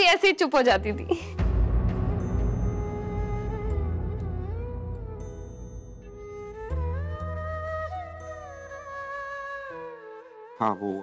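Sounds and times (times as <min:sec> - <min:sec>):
soft melody with sliding notes: 0:01.4 - 0:11.0
low sustained tone: 0:01.9 - 0:09.5.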